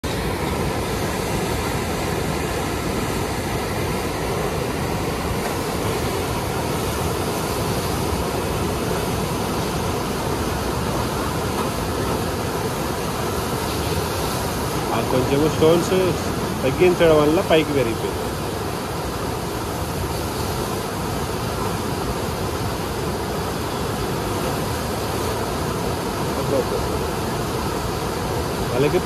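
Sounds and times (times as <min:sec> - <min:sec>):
river water rushing: 0:00.0 - 0:29.0.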